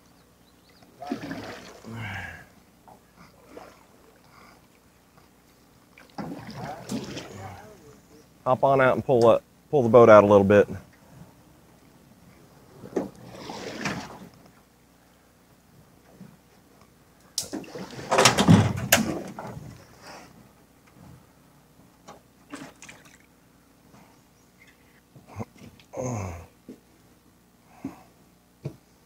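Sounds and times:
water sloshing: 0.9s - 2.6s, 3.2s - 4.9s, 5.5s - 8.1s, 12.8s - 14.4s, 22.5s - 23.3s.

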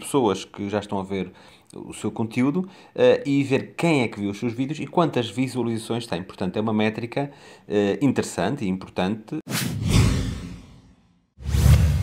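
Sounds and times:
whoosh sound effect: 9.5s - 12.0s.

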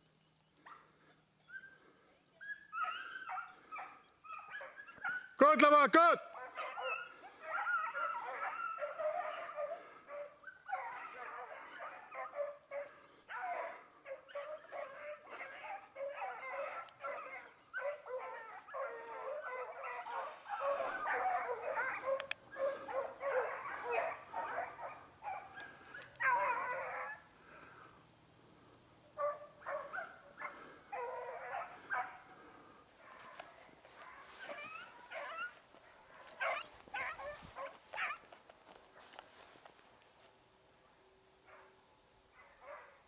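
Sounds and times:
hounds baying and yelping: 0.4s - 5.4s, 6.3s - 39.9s, 41.4s - 43.0s.

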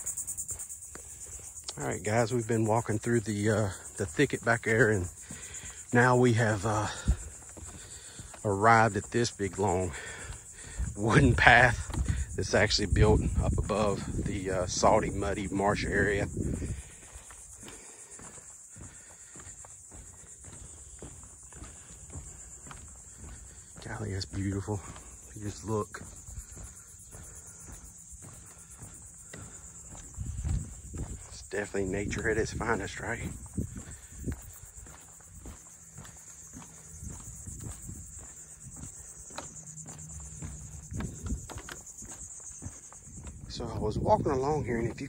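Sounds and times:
footsteps on wooden boardwalk: 0.0s - 45.0s
insects buzzing: 0.0s - 45.0s.

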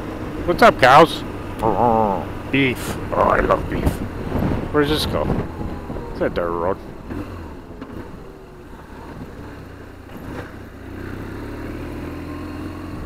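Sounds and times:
motorcycle engine running: 0.0s - 13.0s.

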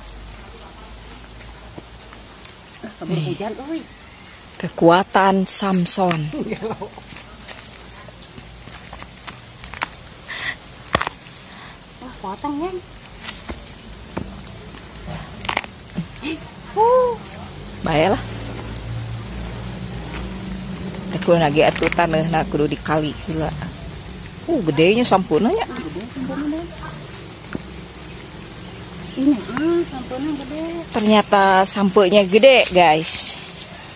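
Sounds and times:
steady rain falling: 0.0s - 33.9s
stem cracking and knocking: 5.5s - 10.1s, 10.8s - 11.6s, 12.8s - 16.4s, 19.8s - 32.8s.

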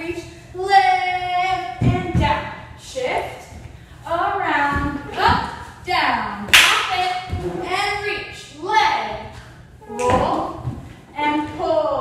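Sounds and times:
sharp hand clap: 6.5s - 6.9s.

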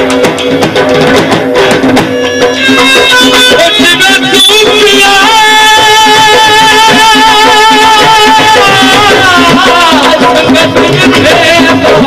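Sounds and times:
plucked string instrument: 0.0s - 7.2s
percussion beat: 0.0s - 12.0s
person singing: 2.1s - 12.0s.

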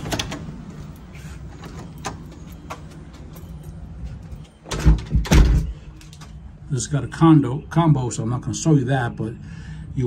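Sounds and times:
door shutting with thud: 4.7s - 5.8s.

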